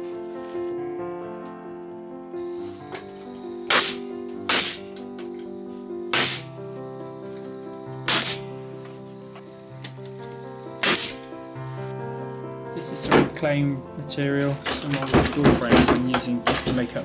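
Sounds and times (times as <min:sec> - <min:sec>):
background music with sustained tones: 0:00.0 - 0:17.0
nail gun firing: 0:02.9 - 0:05.0, 0:06.1 - 0:06.6, 0:08.0 - 0:08.6, 0:10.8 - 0:11.3.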